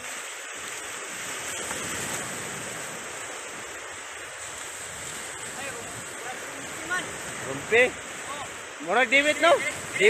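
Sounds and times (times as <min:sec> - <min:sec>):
surf breaking on a beach: 0:00.0 - 0:10.0.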